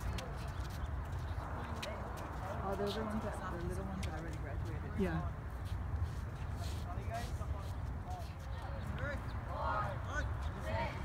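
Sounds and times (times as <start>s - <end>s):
children's voices outdoors: 8.2s - 11.0s.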